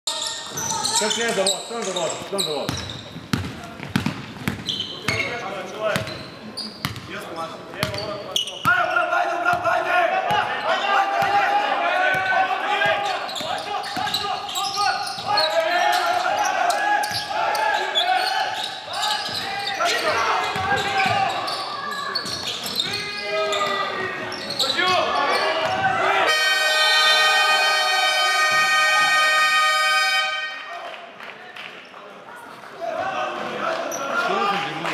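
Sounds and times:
basketball bouncing on wooden floor: 0:02.7 - 0:05.2
people shouting: 0:08.9 - 0:21.4
scoreboard buzzer: 0:26.3 - 0:30.6.

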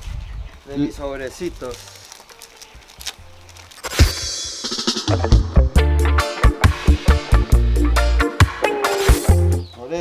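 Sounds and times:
paper sachets crinkling and tearing: 0:00.9 - 0:04.3.

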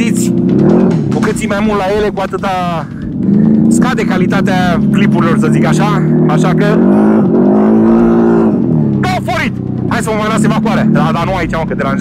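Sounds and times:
atv engine revving: 0:00.0 - 0:12.0.

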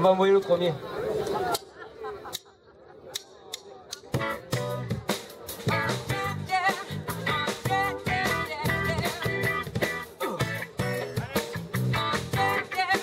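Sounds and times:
live rock band playing: 0:04.0 - 0:13.0.

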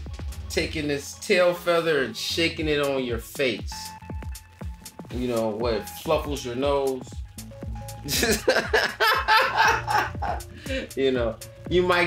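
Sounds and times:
men laughing heartily: 0:08.0 - 0:10.6.

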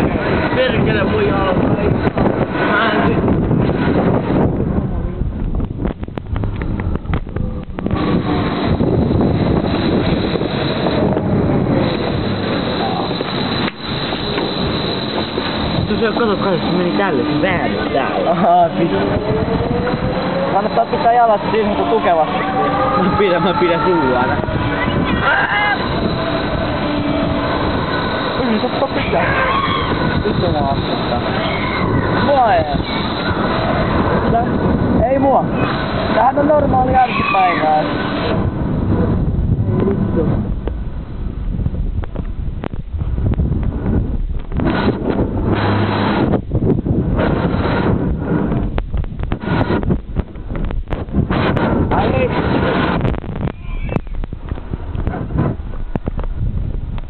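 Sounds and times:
ride machinery whine: 0:00.0 - 0:57.0
wind buffeting microphone: 0:00.0 - 0:57.0
riders calling out: 0:18.9 - 0:34.6.

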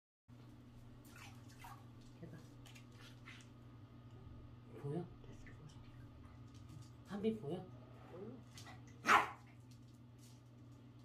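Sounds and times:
steady low hum: 0:00.3 - 0:11.0.

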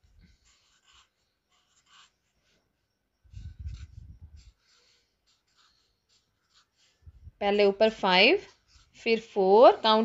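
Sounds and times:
marker strokes on paper: 0:00.0 - 0:10.0.

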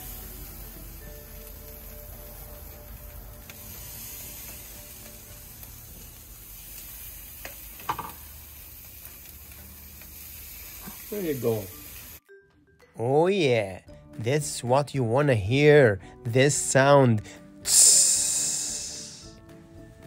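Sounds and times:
fish sizzling on grill: 0:00.0 - 0:12.2, 0:17.4 - 0:19.4.

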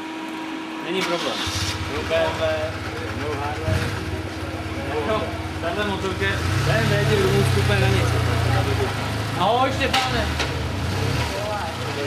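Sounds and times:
voices talking: 0:01.0 - 0:12.0
motorcycle engine idling: 0:01.8 - 0:10.8.

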